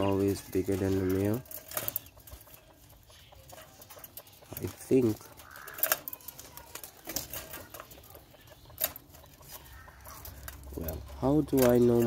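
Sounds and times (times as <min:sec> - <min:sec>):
quails calling softly: 0:00.0 - 0:12.0.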